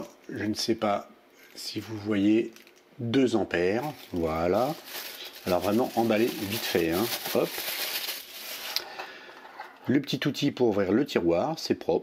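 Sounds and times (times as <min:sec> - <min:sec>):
plastic wrapping crinkling: 0:01.5 - 0:02.9, 0:03.7 - 0:09.1.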